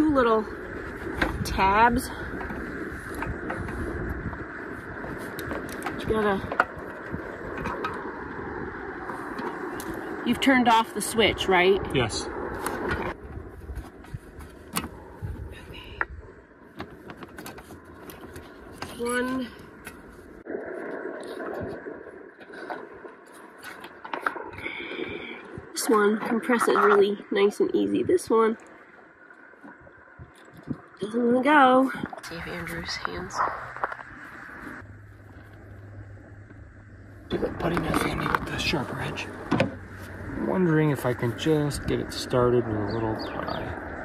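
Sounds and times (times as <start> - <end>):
outdoor background noise: 0.0 - 44.0
wind rumble on microphone: 0.0 - 44.0.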